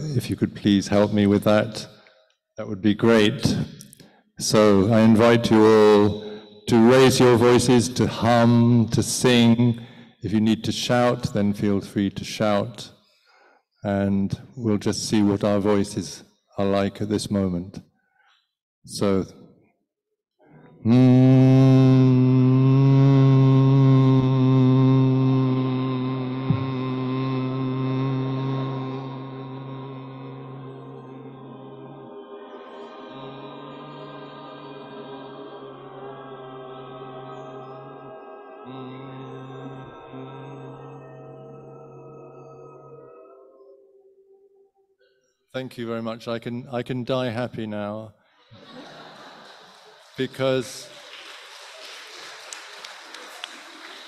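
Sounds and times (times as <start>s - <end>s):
people humming a low note: 20.8s - 44.0s
audience applauding: 48.6s - 54.0s
sharp individual claps: 49.4s - 54.0s.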